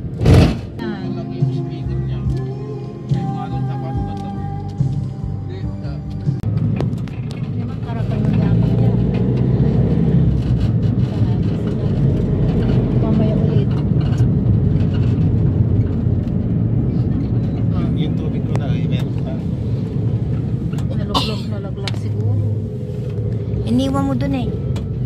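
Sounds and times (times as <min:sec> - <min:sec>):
road noise: 0:00.0 - 0:25.0
vehicle engine rumble: 0:00.0 - 0:25.0.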